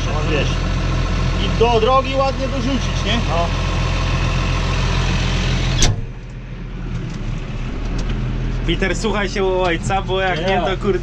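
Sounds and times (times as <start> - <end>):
tractor diesel engine running: 0.0 - 11.0
cab door shutting: 5.7 - 6.3.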